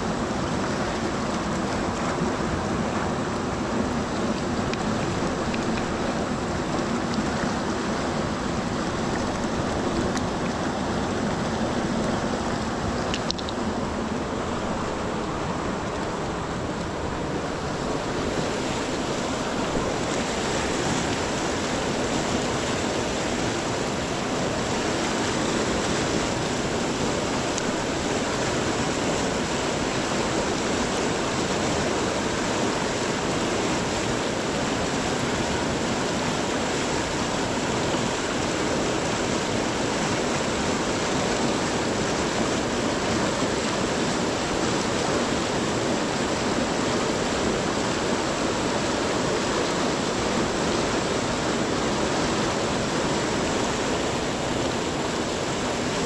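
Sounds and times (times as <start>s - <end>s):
river rushing through rapids: 0.0s - 56.0s.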